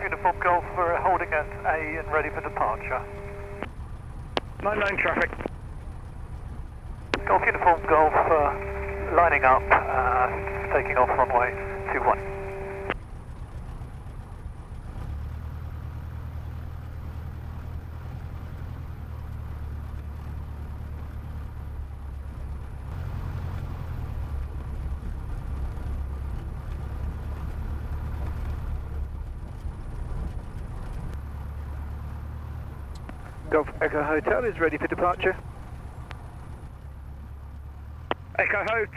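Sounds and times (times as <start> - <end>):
light aircraft engine drone: 0.0 - 38.9.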